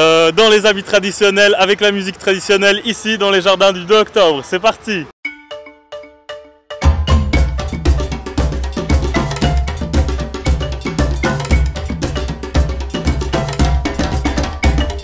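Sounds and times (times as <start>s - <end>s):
ringing percussion strokes: 5.3s - 15.0s
drums: 6.8s - 15.0s.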